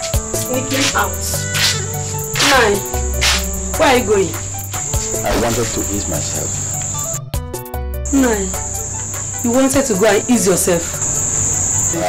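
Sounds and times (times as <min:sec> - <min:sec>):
crickets chirring: 0:00.0 - 0:07.3, 0:08.0 - 0:12.0
background music with falling swoops: 0:00.0 - 0:12.0.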